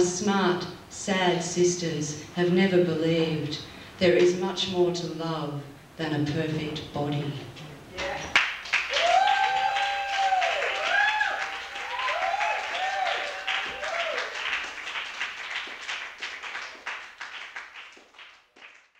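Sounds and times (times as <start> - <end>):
audience applauding: 8.3 - 18.9
whoops and cheers: 8.9 - 14.5.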